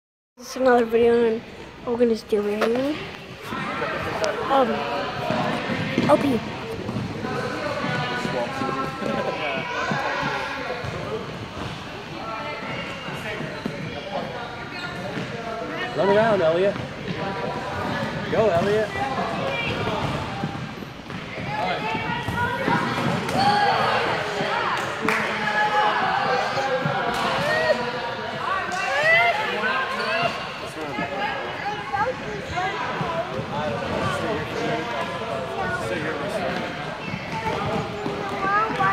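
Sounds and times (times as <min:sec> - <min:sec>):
children's voices echoing: 0:37.3 - 0:38.9.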